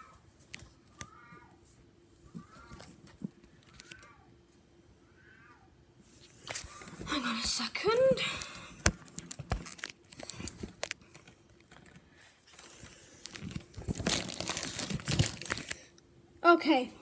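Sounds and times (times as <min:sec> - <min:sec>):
crinkling and rustling: 0:00.0 - 0:04.2, 0:06.1 - 0:15.9.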